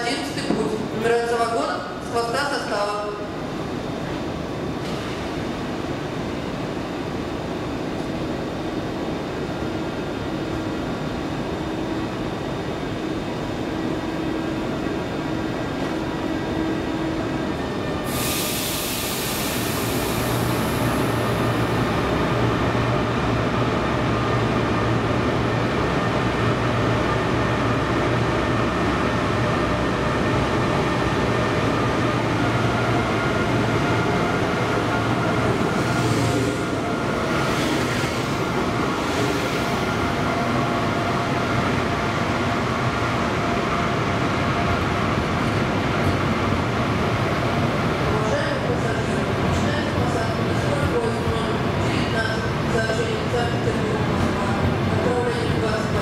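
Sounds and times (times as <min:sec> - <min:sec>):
electric locomotive humming: 0:05.4 - 0:56.0
hiss of air: 0:18.0 - 0:21.3.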